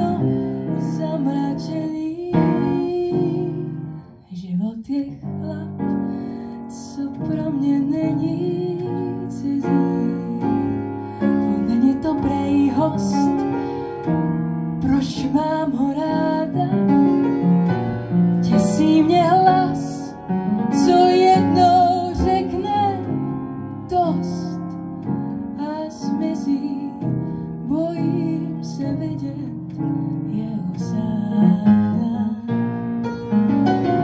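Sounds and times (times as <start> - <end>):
piano accompaniment: 0.0 - 4.3, 4.9 - 34.0
woman singing blues: 0.0 - 13.7, 14.8 - 17.2, 18.3 - 24.8, 25.5 - 32.6.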